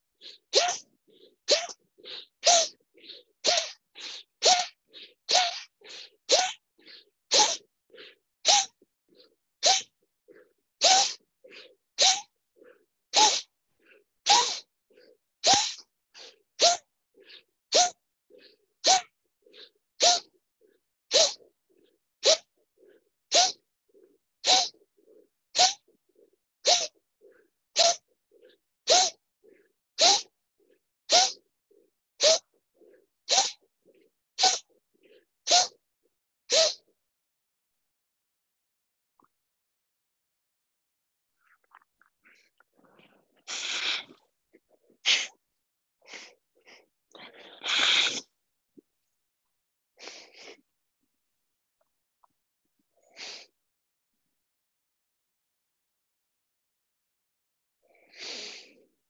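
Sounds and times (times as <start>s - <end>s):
forceful rhythmic breathing: 0.0s - 35.8s, 41.4s - 45.4s, 46.0s - 48.4s.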